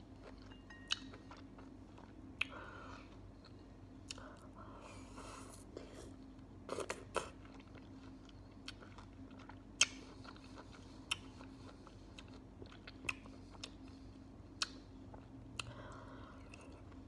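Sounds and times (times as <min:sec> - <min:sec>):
chewing juicy fruit: 0:00.0 - 0:17.0.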